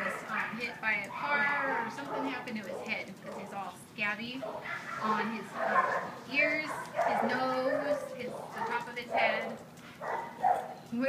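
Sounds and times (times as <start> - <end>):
dog whining: 0.0 - 3.6, 4.4 - 10.9.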